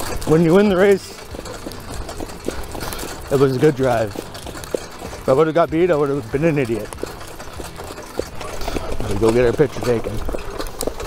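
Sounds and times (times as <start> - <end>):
cart rumbling over dirt track: 0.0 - 11.0
hoof and harness knocks: 0.0 - 11.0
rapid rattling chatter: 0.0 - 11.0.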